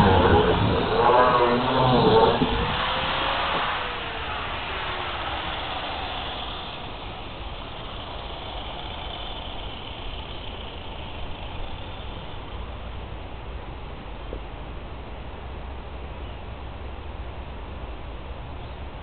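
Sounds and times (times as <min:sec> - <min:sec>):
motor with falling pitch: 0:00.0 - 0:12.7
steady background hiss: 0:00.0 - 0:19.0.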